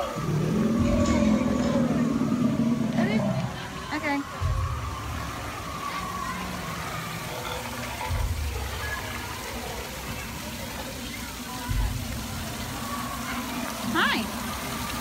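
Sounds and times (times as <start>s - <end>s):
small waterfall over rocks: 0.0s - 15.0s.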